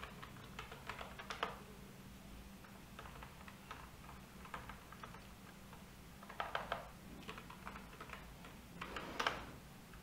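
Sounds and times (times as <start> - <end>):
keyboard keys clicking: 0.0 - 1.6, 3.0 - 5.3, 6.2 - 8.6.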